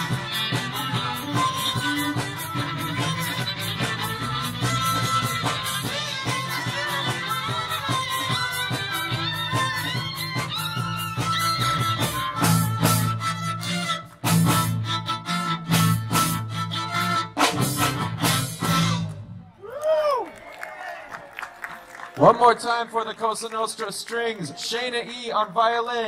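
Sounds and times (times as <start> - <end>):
string band playing pop: 0.0 - 19.3.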